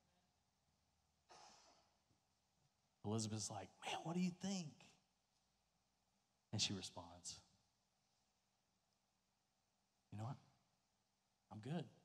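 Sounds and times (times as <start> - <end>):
breath into microphone: 1.3 - 2.0.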